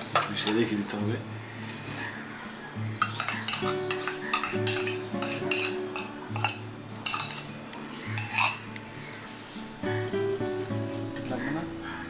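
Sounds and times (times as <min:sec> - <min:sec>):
metal spoon scraping steel bowls: 0:03.0 - 0:08.7.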